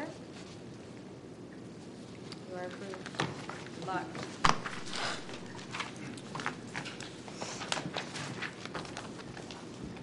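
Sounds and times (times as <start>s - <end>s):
paper rustling: 4.4s - 10.0s.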